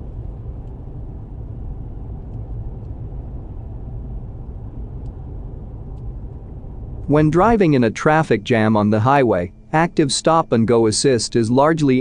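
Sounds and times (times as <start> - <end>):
low road rumble inside car: 0.0 - 11.8.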